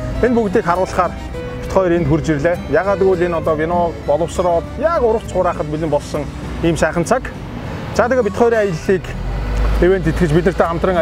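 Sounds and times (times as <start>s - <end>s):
road traffic: 0.0s - 11.0s
person speaking: 0.3s - 5.8s.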